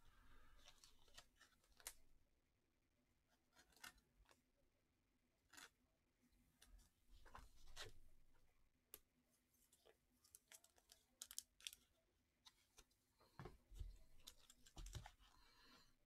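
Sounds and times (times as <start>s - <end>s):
cards in plastic holders rustling: 0.2s - 2.1s, 3.3s - 4.4s, 6.6s - 8.1s, 9.7s - 15.8s.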